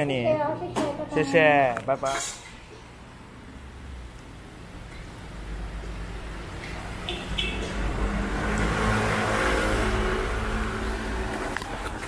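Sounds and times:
vehicle passing by: 0:05.4 - 0:12.0.

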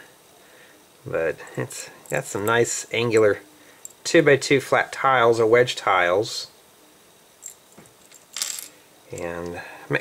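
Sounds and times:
plastic pieces clattering on table: 0:08.0 - 0:08.7.

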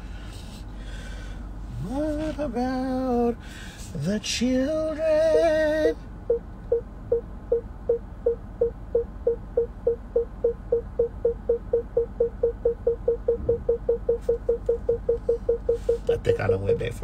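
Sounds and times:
parking sensor beeps: 0:05.0 - 0:17.0.

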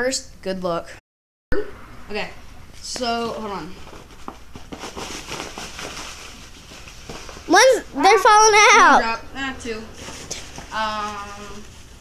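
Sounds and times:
fabric and bag rustling: 0:03.7 - 0:09.0.

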